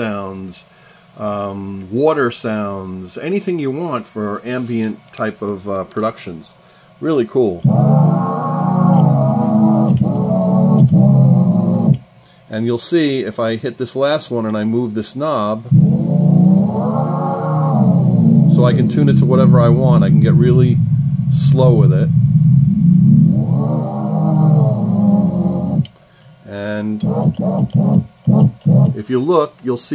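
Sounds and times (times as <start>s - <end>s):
sustained low tape note: 7.5s - 12.0s, 15.6s - 25.9s, 26.5s - 29.0s.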